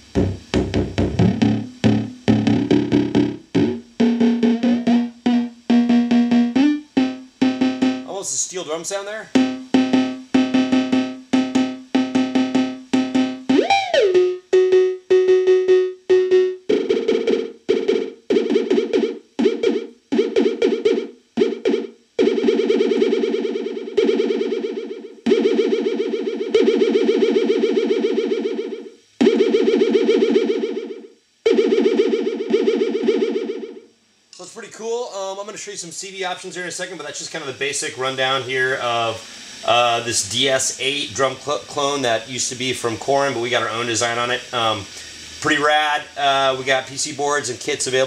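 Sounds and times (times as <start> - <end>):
synth percussion hits: 0.1 - 8.2, 9.4 - 22.9
sticks hitting drum pad: 0.2 - 8.1.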